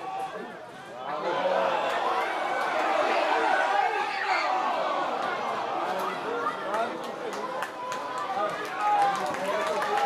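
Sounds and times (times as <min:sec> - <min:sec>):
people calling out on a pitch: 0:00.0 - 0:10.0.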